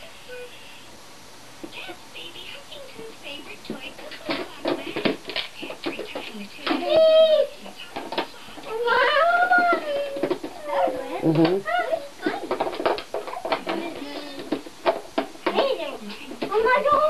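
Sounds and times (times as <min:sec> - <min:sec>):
toddlers high-pitched vocal sounds: 0:06.8 - 0:07.6, 0:08.6 - 0:12.4
plastic toys clicking: 0:07.7 - 0:17.0.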